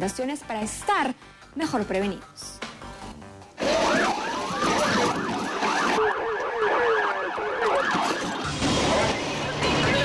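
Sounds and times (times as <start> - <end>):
police siren fast yelp: 3.6 - 9.0.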